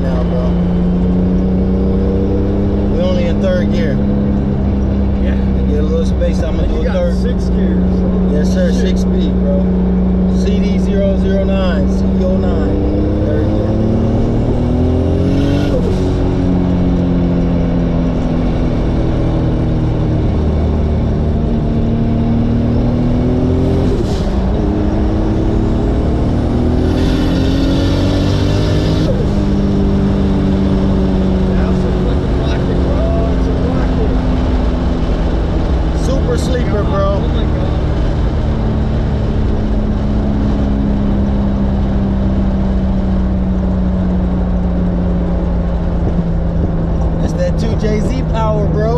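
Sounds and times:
car engine revving: 0.0 - 48.9.

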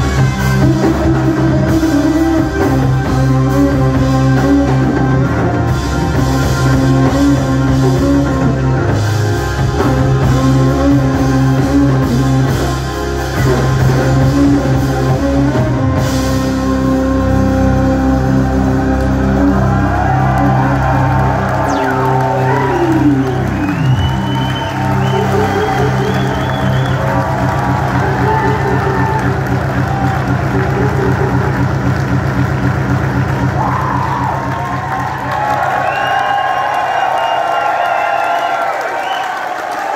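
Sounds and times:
synthesizer drone: 0.0 - 35.8
audience cheering and whooping: 18.8 - 39.9.

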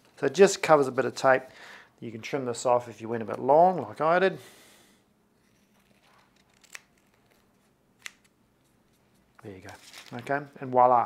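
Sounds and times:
scissors snipping tape: 5.9 - 7.4.

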